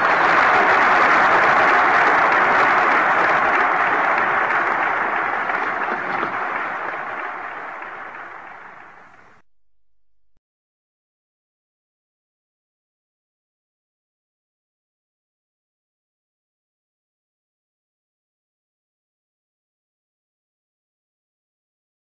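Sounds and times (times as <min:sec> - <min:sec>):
crowd applauding: 0:00.0 - 0:09.4.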